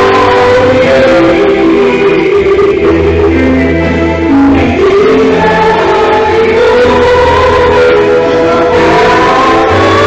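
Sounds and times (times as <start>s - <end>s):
choral music: 0.0s - 10.0s.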